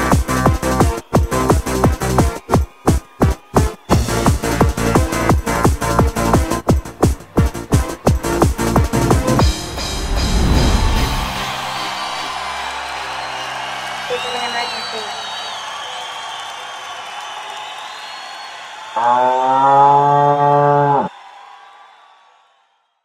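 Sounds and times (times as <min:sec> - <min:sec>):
electronic dance music: 0:00.0 - 0:15.5
cow mooing: 0:19.0 - 0:21.1.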